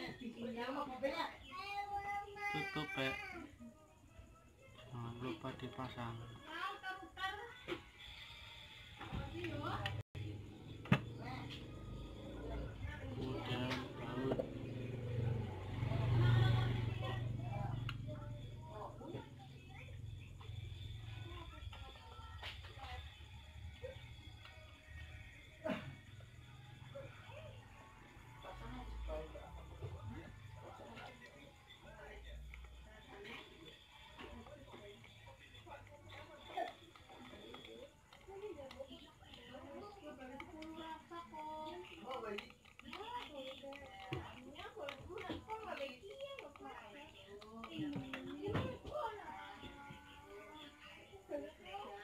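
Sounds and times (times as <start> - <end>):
television speech and music: 0.0 - 52.0.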